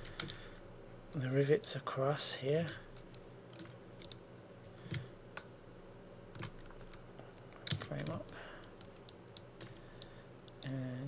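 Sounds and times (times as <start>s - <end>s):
keyboard and mouse clicks: 2.7s - 5.5s, 6.3s - 10.8s
low hum of a voice: 10.6s - 11.0s.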